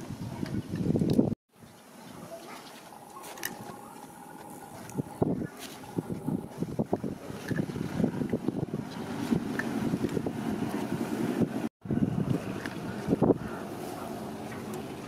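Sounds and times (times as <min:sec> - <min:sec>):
wind noise on microphone: 0:00.0 - 0:01.4, 0:04.5 - 0:15.0.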